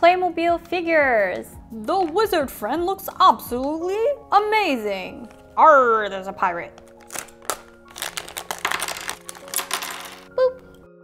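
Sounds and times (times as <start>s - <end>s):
plastic foil crinkling: 6.7s - 10.3s
plastic foil packet tearing: 6.8s - 10.3s.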